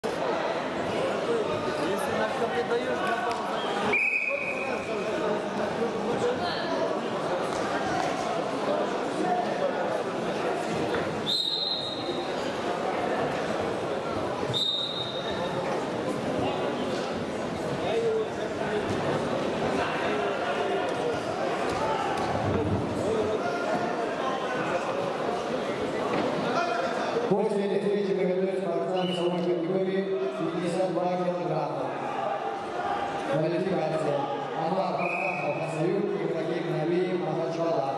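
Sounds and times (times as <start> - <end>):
murmur of voices in hall: 0.0 - 37.9
referee's whistle blast: 3.9 - 4.7.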